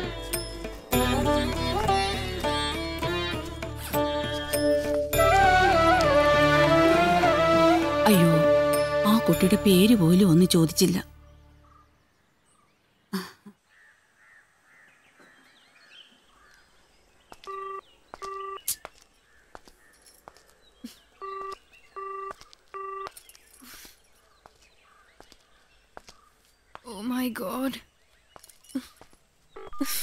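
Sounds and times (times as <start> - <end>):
faint birdsong: 10.2 - 30.0
mobile phone beeping: 17.5 - 18.8, 21.2 - 23.2, 29.6 - 30.0.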